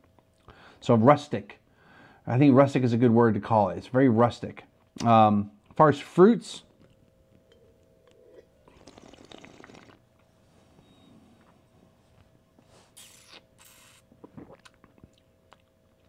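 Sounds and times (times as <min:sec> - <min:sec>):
faint steady hum: 0:00.0 - 0:16.0
wine sipping: 0:06.7 - 0:10.3, 0:12.9 - 0:15.2
small mouth clicks: 0:13.0 - 0:16.0.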